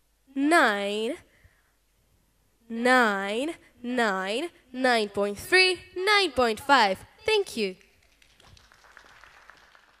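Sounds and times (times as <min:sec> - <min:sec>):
faint applause: 0:08.0 - 0:10.0.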